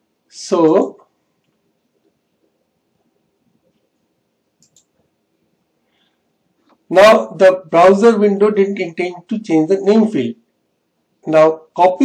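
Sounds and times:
computer mouse clicks: 4.6s - 5.1s.

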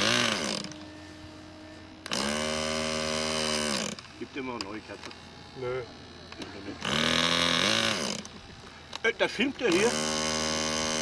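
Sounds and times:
electric starter spinning engine: 0.0s - 11.0s.

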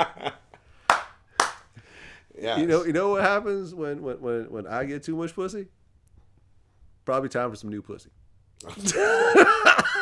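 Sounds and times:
man laughing: 0.0s - 0.6s, 8.6s - 10.0s
hand claps: 0.8s - 1.8s.

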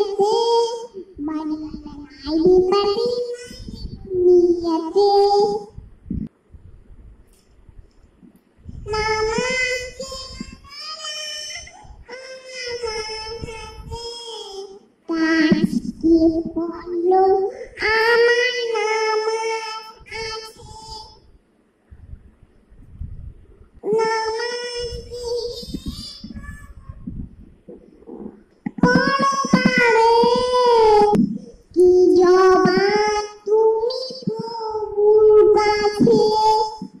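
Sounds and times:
girl singing devotional song: 0.0s - 6.0s, 8.6s - 21.4s, 23.8s - 27.4s, 28.1s - 37.0s.

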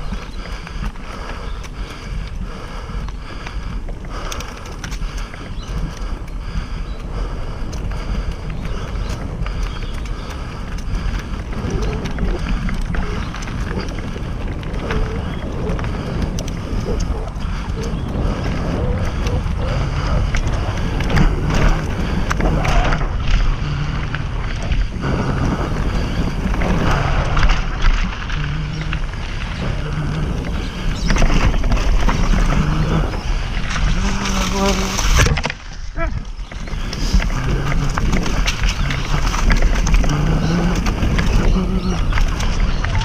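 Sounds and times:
bike rattling clicks and knocks: 0.0s - 43.0s
tyres rumbling on dirt: 0.0s - 43.0s
wind rushing over microphone: 0.0s - 43.0s.

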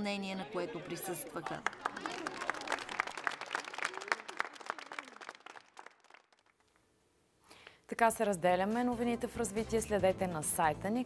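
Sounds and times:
small crowd clapping: 1.2s - 6.8s.

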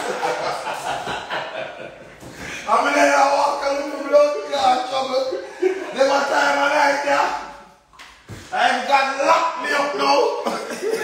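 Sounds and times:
man laughing: 0.0s - 2.0s, 3.6s - 6.6s, 10.1s - 11.0s.

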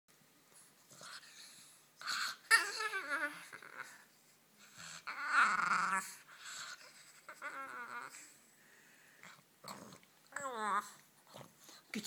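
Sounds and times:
dog whining grumbles: 0.9s - 8.4s, 9.3s - 11.6s.

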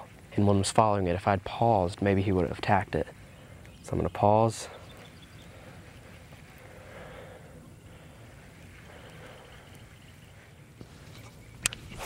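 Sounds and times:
fishing rod handling: 10.8s - 12.0s.

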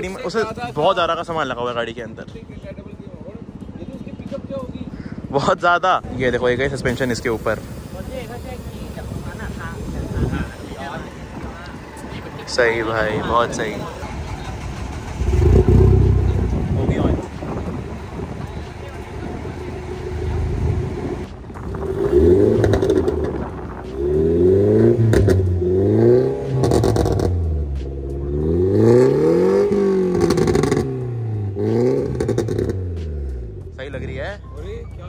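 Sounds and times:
car engine revving: 3.4s - 34.4s.

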